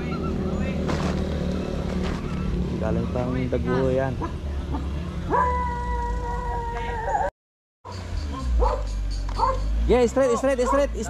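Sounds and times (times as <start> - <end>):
low engine rumble: 0.0 - 7.3
dog howling: 5.3 - 7.3.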